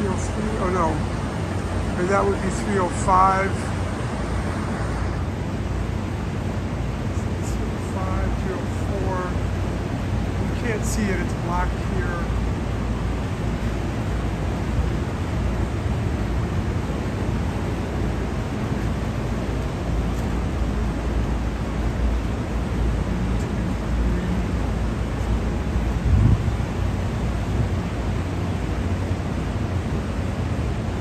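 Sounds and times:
air-conditioning units rumbling: 0.0 - 31.0.

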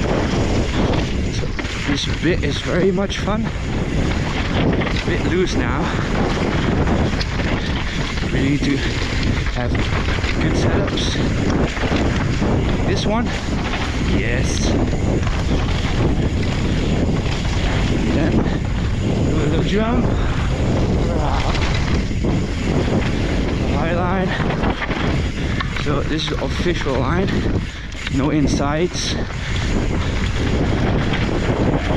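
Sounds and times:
bike tyres rolling over dirt: 0.0 - 31.9
wind on microphone: 0.0 - 31.9
person speaking: 21.0 - 21.8, 23.7 - 24.5.

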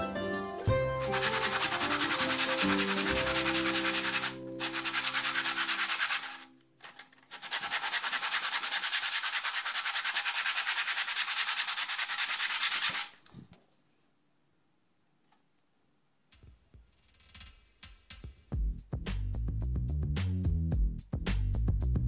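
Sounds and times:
hand-sanding wood: 1.0 - 13.2.

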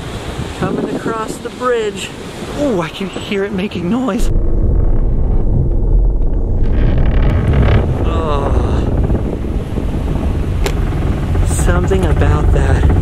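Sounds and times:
tyres rumbling on wooden bridge: 0.3 - 13.0.

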